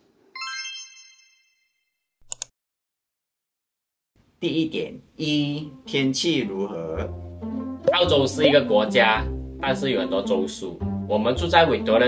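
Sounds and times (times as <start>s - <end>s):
multi-tone chime: 0.4s - 1.9s
quick sharp clicks: 2.2s - 2.5s.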